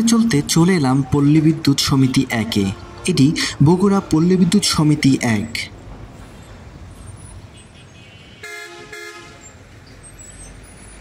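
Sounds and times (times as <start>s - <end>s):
road traffic rumble: 0.0s - 11.0s
vehicle horn honking: 2.0s - 3.6s, 7.5s - 9.6s.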